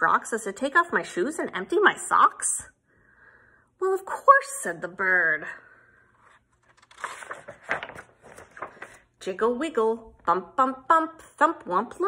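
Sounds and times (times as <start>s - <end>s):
paper page rustling: 6.2s - 9.1s.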